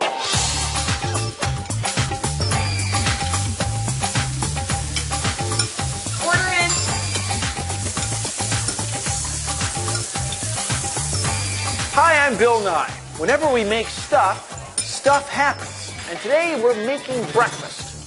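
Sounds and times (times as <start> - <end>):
music with funky bass line: 0.0 - 16.2
bacon sizzling in a frying pan: 0.4 - 16.3.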